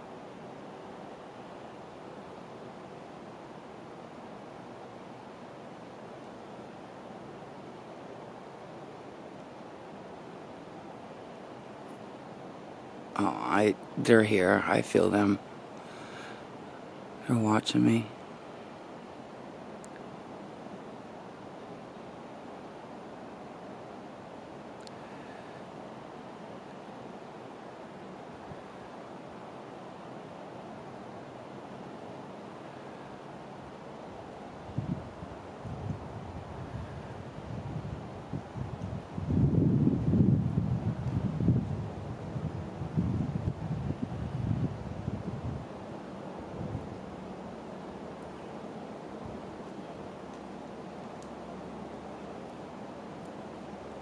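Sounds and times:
wind hiss: 0.0s - 54.0s
wind gusts buffeting microphone: 34.6s - 47.2s.

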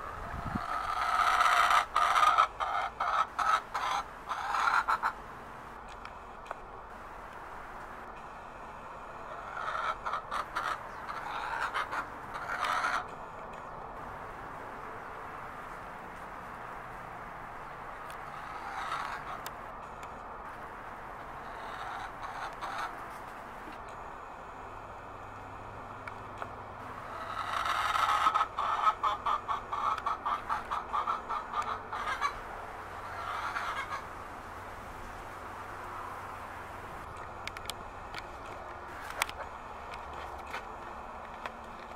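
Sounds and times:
chickens clucking: 0.0s - 5.8s, 9.0s - 16.0s, 17.6s - 24.1s, 26.3s - 35.2s, 37.0s - 41.9s
steady background hiss: 0.0s - 41.9s.

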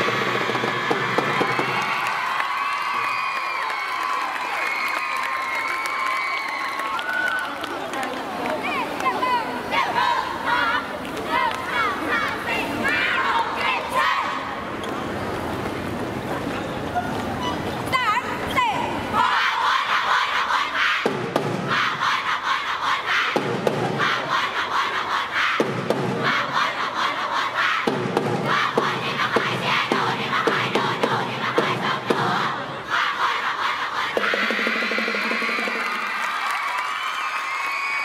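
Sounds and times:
girls shouting a cheer: 8.6s - 14.5s, 18.0s - 21.1s, 21.7s - 23.4s
girls chanting: 9.2s - 14.6s, 18.7s - 34.7s.

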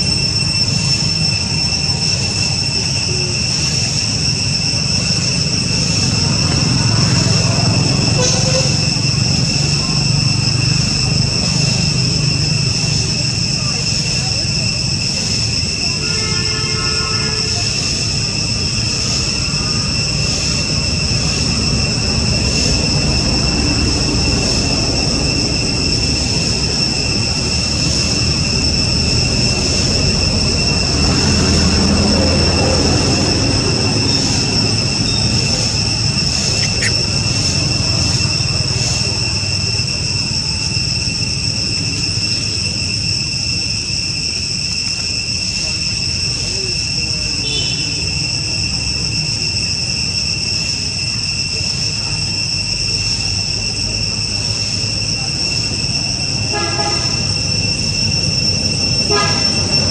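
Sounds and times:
high-pitched insect drone: 0.0s - 59.9s
short call: 7.6s - 9.1s, 30.8s - 39.1s, 56.4s - 59.9s.

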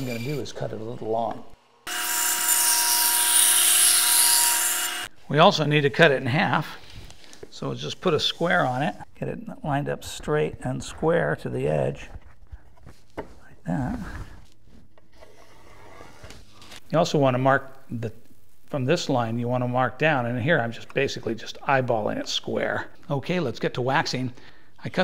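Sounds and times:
bandsaw cutting cardboard: 0.0s - 0.5s.

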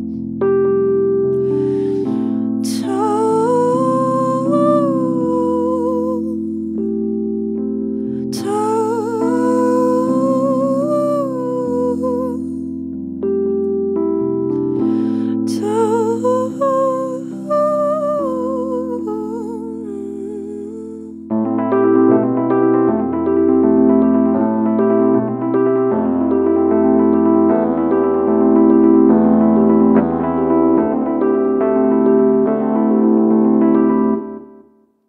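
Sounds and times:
sustained keyboard chords: 0.0s - 34.7s
breath: 1.4s - 2.6s, 14.8s - 15.4s
woman humming with vibrato: 14.8s - 21.2s.

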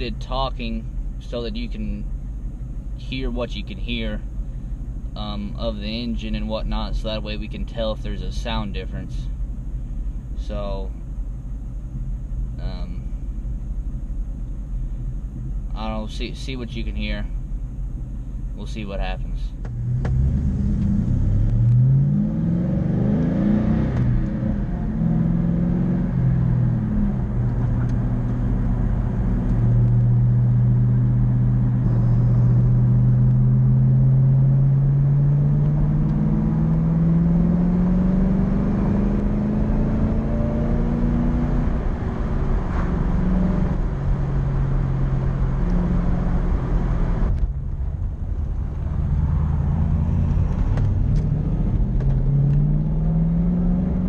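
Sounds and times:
car engine accelerating from inside: 19.6s - 54.0s.

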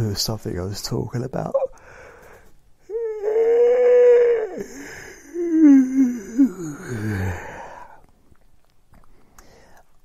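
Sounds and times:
long high held vocal sound: 2.8s - 7.8s.

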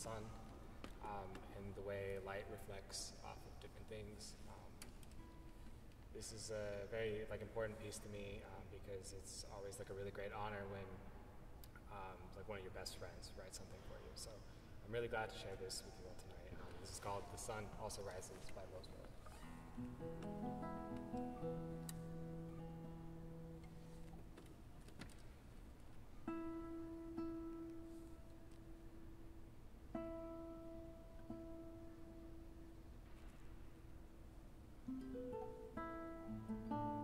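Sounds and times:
classical guitar playing solo: 19.4s - 24.3s, 26.2s - 32.8s, 34.8s - 37.0s.

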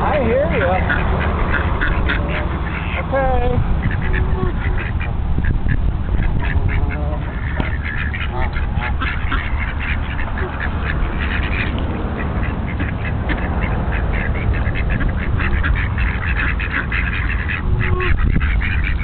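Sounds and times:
ducks quacking: 0.0s - 19.0s.

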